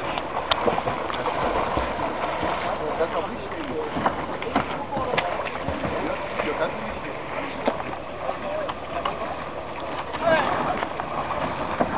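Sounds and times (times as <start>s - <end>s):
outdoor noise: 0.0s - 11.9s
swimmers splashing: 0.0s - 11.9s
voices calling and talking: 2.6s - 11.0s.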